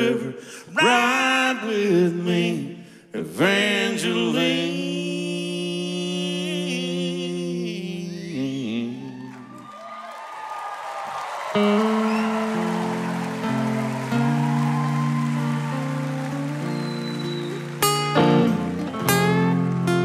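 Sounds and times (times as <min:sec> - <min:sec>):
applause: 0:09.2 - 0:20.0
electric guitar chords: 0:11.6 - 0:20.0.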